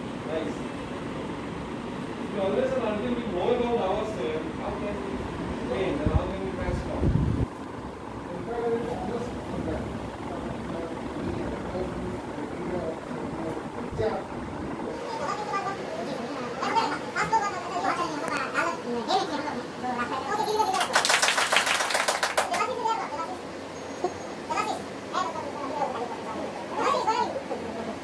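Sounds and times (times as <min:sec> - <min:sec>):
people talking indistinctly: 0:08.1 - 0:21.0
people clapping: 0:20.6 - 0:22.8.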